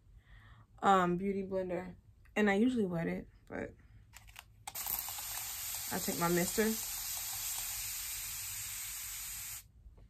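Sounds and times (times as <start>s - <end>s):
spray bottle hissing: 4.7s - 9.7s.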